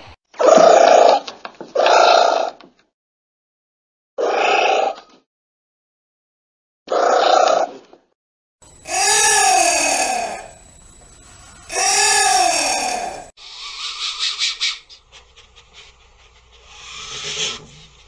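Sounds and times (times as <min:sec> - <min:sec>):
anteater calls: 0:08.6 - 0:15.0.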